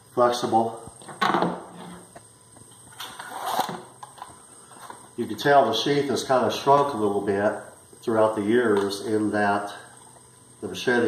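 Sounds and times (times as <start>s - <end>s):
machete scraping into canvas sheath: 3.0s - 3.9s.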